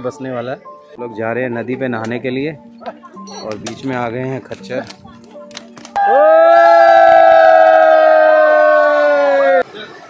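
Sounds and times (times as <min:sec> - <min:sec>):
men shouting long held cry: 0:06.0 - 0:09.6.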